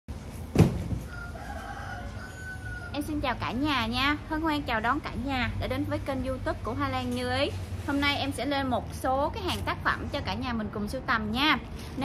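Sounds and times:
sharp thump: 0.5 - 1.1
distant rooster crowing: 1.0 - 3.3.

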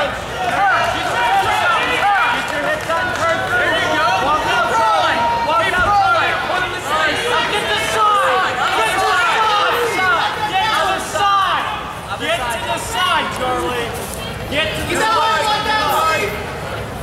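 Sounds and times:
crowd shouting and yelling: 0.0 - 17.0.

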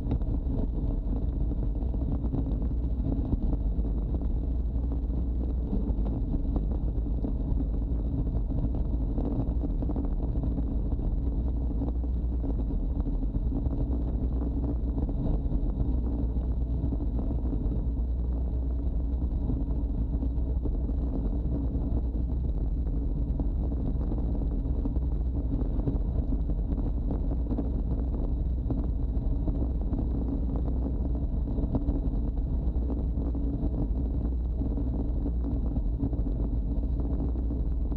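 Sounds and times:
low road rumble: 0.0 - 37.9
wind rushing over microphone: 0.0 - 37.9.

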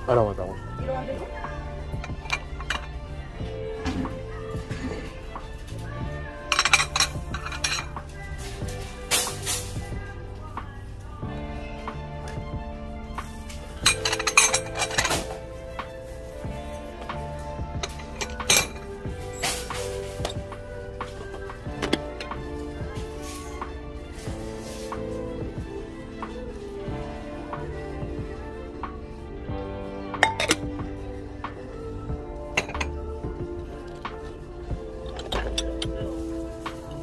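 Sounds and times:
background music: 0.0 - 37.0
ceramic plates clinking: 1.9 - 3.0, 6.4 - 8.1, 13.7 - 15.5, 17.8 - 20.6, 30.2 - 30.7, 32.5 - 33.0, 35.0 - 36.1.

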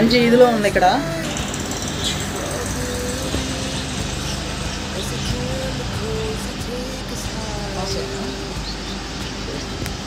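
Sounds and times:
faint distant voices: 0.0 - 10.0
steady background noise: 0.0 - 10.0.

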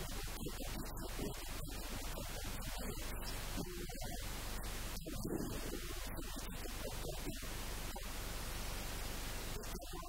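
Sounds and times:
background recording hiss: 0.0 - 10.0.

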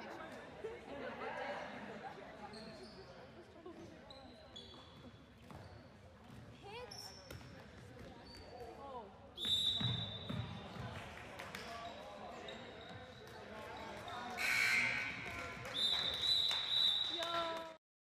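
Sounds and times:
sneakers squeaking on gym floor: 2.4 - 8.8, 9.4 - 10.9, 11.6 - 15.2.

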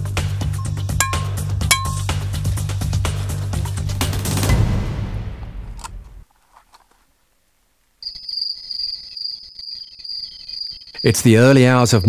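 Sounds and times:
background music: 0.0 - 6.2
crickets trilling: 8.0 - 12.0.

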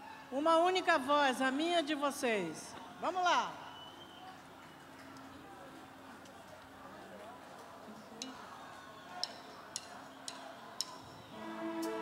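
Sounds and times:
faint concert crowd voices: 3.5 - 12.0
drumstick clicks: 9.2 - 11.0.

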